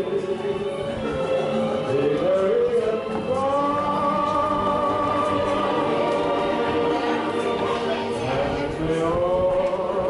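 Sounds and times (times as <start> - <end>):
choir holding sustained notes: 0.0 - 10.0.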